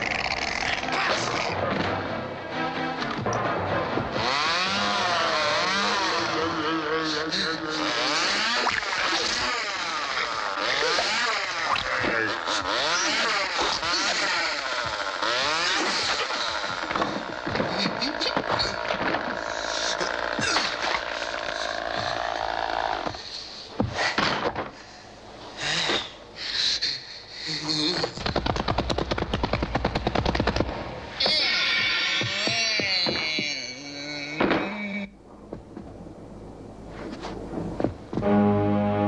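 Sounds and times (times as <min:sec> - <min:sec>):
chainsaw engine revving: 0:04.1 - 0:23.3
voice-like shrieks: 0:31.2 - 0:35.1.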